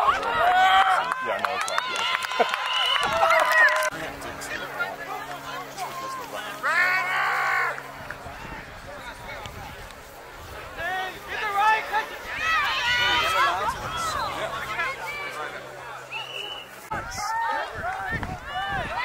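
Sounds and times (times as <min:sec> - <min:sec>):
players and spectators shouting: 0:00.0 - 0:09.4, 0:10.7 - 0:19.0.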